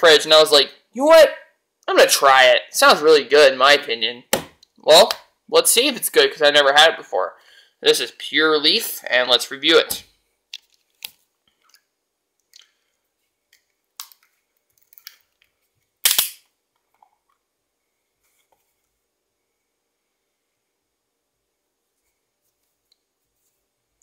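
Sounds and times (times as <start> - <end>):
metal cap sharp snap: 16.0 - 16.4.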